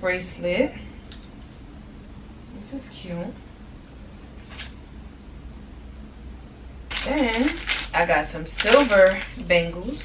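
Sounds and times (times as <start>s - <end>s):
steady low hum: 0.0s - 10.0s
person speaking: 8.5s - 10.0s.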